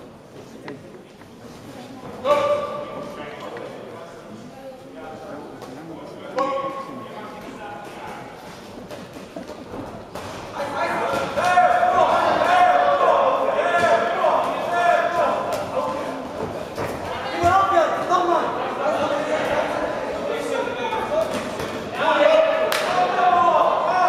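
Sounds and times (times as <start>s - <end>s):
voices shouting in a hall: 2.2s - 3.3s, 10.5s - 24.0s.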